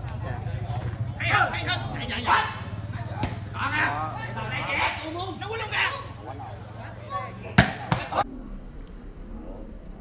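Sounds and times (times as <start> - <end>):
players shouting: 0.1 - 8.2.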